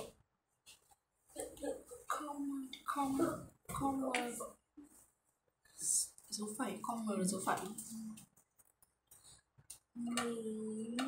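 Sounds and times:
person making wordless vocal sounds: 9.9 - 11.0.

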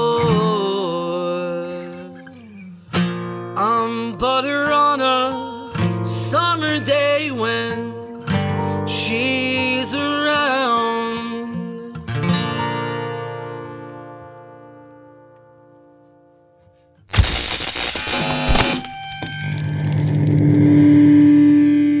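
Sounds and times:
acoustic guitar chord ringing: 0.2 - 16.0, 18.6 - 22.0
distorted music sting: 17.1 - 22.0.

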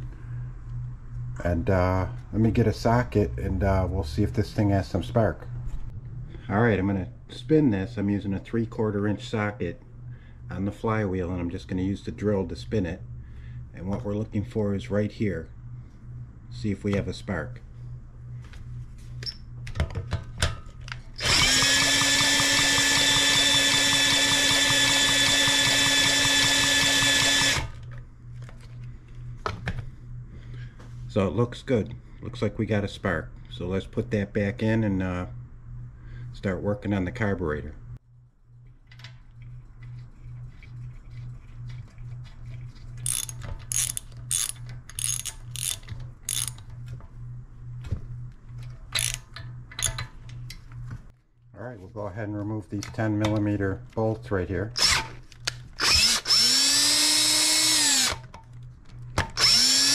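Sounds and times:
cordless drill spinning engine: 21.2 - 28.8, 41.0 - 46.7, 49.0 - 49.3, 55.8 - 58.3, 59.3 - 59.9
ratchet wrench clicking: 43.0 - 46.7, 48.9 - 50.1.

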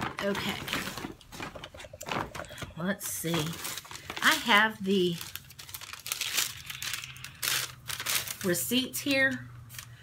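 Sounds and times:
woman speaking: 0.0 - 1.0, 2.7 - 5.4, 8.4 - 9.5
shopping bag rustling and crinkling: 0.0 - 9.9.

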